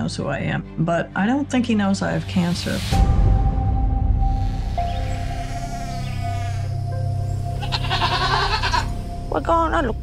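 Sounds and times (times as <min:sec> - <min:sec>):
soft background music: 0:00.0 - 0:10.0
goat bleating: 0:05.2 - 0:06.8, 0:07.6 - 0:08.9.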